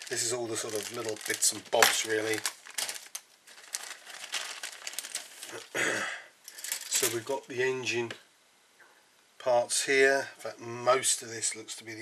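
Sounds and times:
plastic bag crinkling: 0.0s - 7.5s
person clearing throat: 5.6s - 6.3s.

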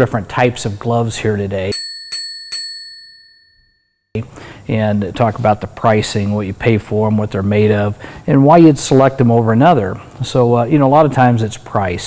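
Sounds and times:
bright bell ding: 1.7s - 3.8s.

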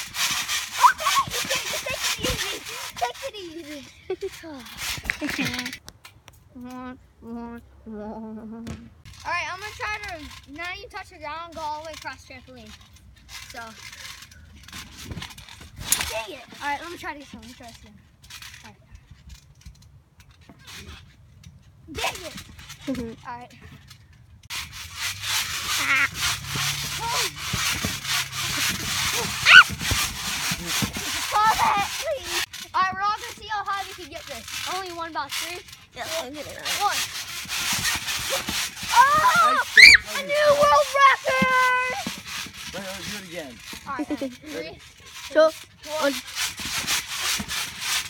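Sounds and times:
trampoline springs jingling and creaking: 0.0s - 7.0s, 9.0s - 48.0s
ball thumping: 8.5s - 9.0s.

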